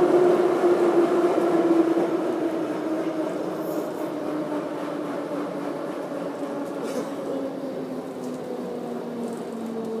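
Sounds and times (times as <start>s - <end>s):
train rumbling: 0.0s - 10.0s.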